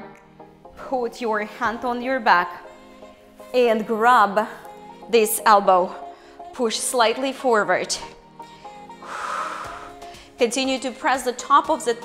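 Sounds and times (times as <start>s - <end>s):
quiet background music: 0.0s - 12.0s
breath exhaled into microphone: 8.6s - 10.4s.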